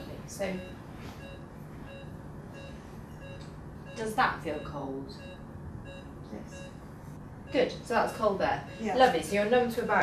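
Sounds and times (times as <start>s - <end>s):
low steady hum: 0.0s - 10.0s
patient monitor beeping: 0.0s - 10.0s.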